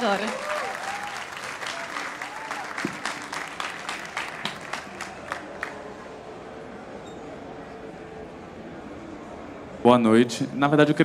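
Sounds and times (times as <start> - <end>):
audience applauding: 0.0 - 6.0.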